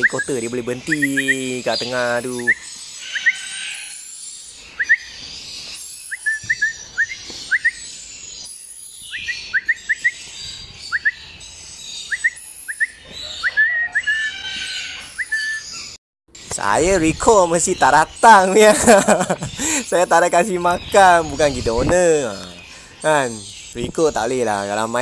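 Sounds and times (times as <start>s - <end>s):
parrot chirping: 0.0s - 16.0s
faint high twittering: 0.0s - 25.0s.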